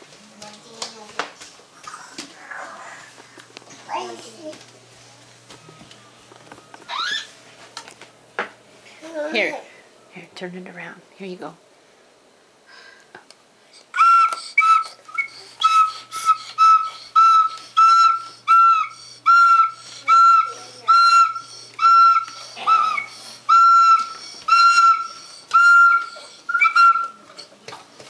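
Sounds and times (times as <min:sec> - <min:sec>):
toy recorder toots: 0:14.0 - 0:27.2.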